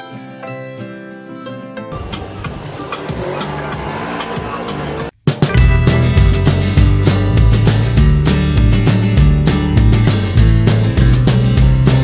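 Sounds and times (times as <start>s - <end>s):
utility vehicle engine and road noise: 1.9s - 12.0s
music with heavy bass beat: 2.0s - 12.0s.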